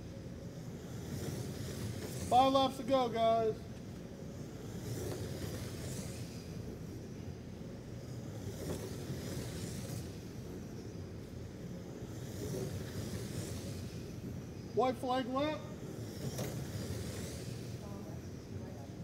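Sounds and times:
rc cars humming: 0.0 - 19.0
rc trucks passing by: 0.0 - 19.0.

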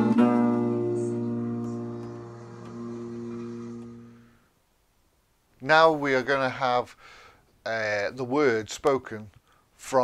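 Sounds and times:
acoustic guitar chord ringing: 0.0 - 4.5.

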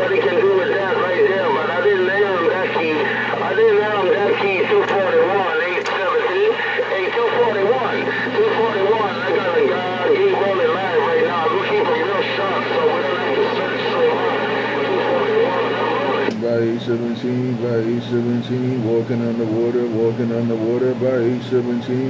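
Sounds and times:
steady low hum: 0.0 - 22.0
voices over a radio: 0.0 - 22.0.

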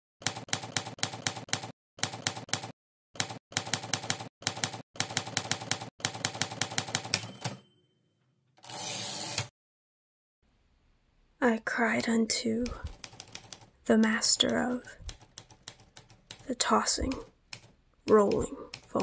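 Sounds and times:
typewriter bell ring: 6.8 - 8.0
typewriter carriage rasp: 8.6 - 9.5.

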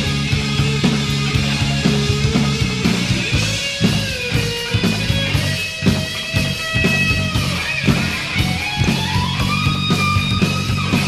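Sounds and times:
electric guitar playing held notes: 0.0 - 11.0
steady drum beat: 0.0 - 11.0.

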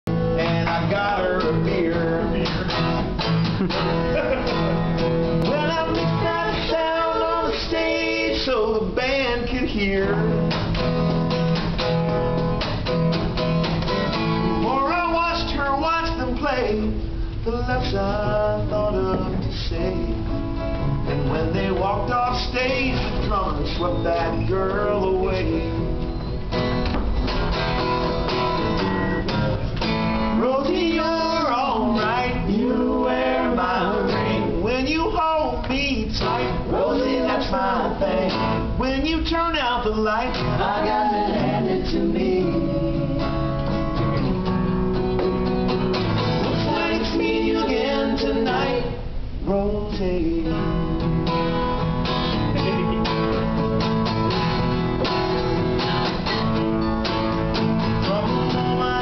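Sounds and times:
acoustic guitar strumming: 0.1 - 59.0
man singing a ballad: 0.4 - 2.7, 5.4 - 10.4, 14.6 - 20.4, 21.1 - 25.9, 30.4 - 43.4, 46.4 - 50.9.

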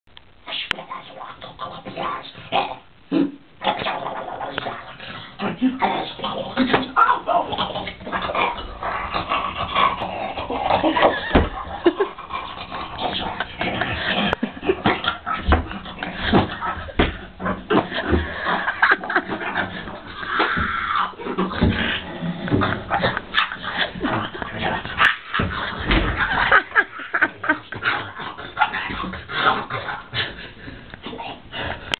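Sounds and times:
man making animal noises: 0.5 - 28.5.

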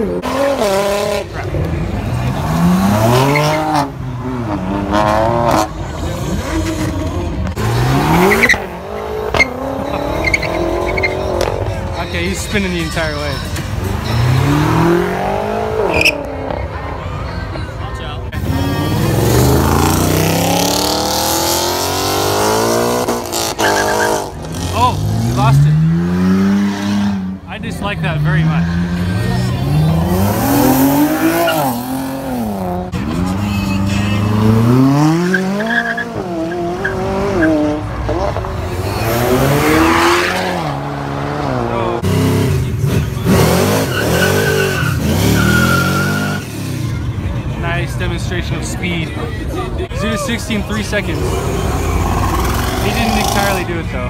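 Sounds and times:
sports car engines revving: 0.0 - 54.0.

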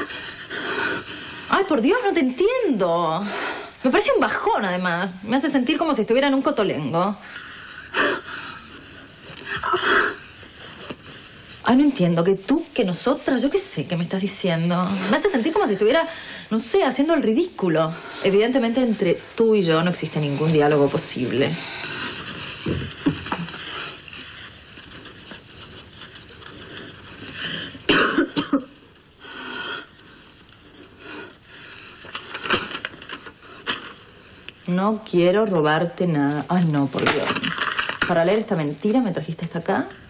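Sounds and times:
person coughing: 27.8 - 28.8.

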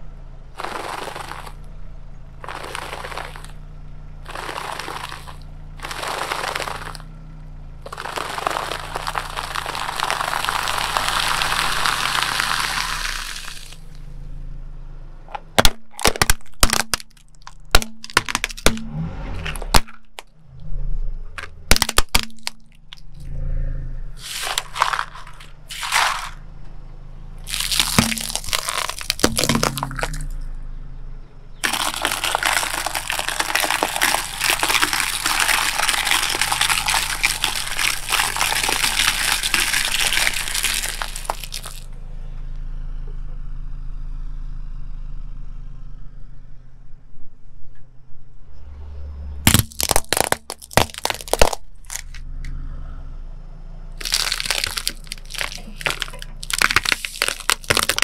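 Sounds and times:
low engine hum: 0.0 - 58.0
tyre crushing snack bag: 0.6 - 1.7, 2.4 - 3.6, 4.2 - 7.1, 7.8 - 14.0, 15.6 - 20.3, 21.4 - 23.1, 24.2 - 26.4, 27.4 - 30.4, 31.6 - 41.9, 49.5 - 52.2, 54.0 - 58.0
plastic cracking and snapping: 15.6 - 18.8, 21.4 - 23.0, 27.5 - 30.3, 31.6 - 41.8, 49.5 - 52.2, 54.0 - 58.0.

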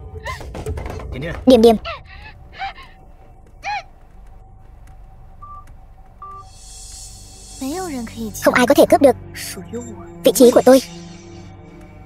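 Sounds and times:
low hum: 1.7 - 12.0
electronic phone beep: 5.4 - 6.5.

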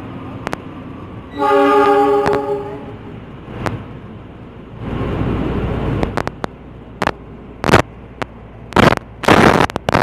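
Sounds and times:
passing train rumble: 0.0 - 10.0
train horn chord: 1.3 - 3.1.

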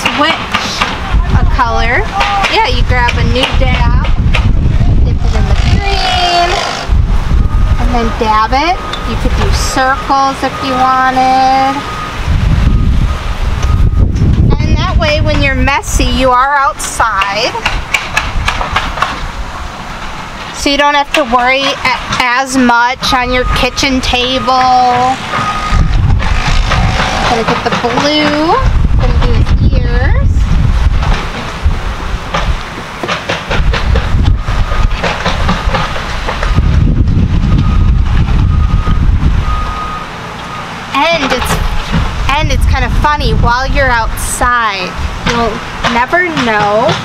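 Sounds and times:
wind on microphone: 0.0 - 19.8, 20.6 - 40.0, 41.0 - 47.0
low construction rumble: 0.0 - 47.0
reversing alarm beeping: 7.3 - 14.9, 21.9 - 26.0, 27.0 - 28.6, 34.3 - 35.7, 37.4 - 41.6.

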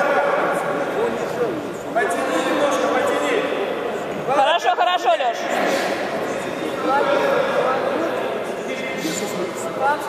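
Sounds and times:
talk in reverberant hall: 0.0 - 10.0.

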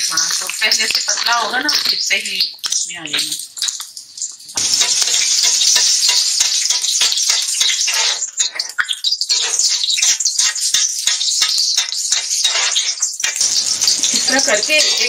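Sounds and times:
patty sizzling in hot oil: 0.0 - 15.0.

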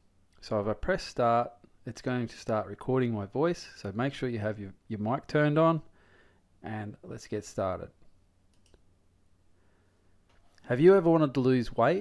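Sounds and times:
computer mouse clicks: 8.5 - 8.8.

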